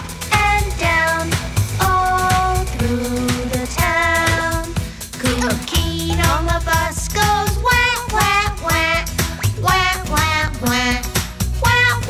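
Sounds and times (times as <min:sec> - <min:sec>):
children's music with steady beat: 0:00.0 - 0:12.0.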